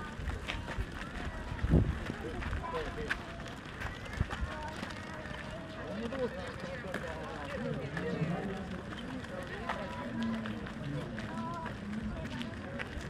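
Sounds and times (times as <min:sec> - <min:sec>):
footsteps: 0:00.0 - 0:13.0
people chatting: 0:00.0 - 0:13.0.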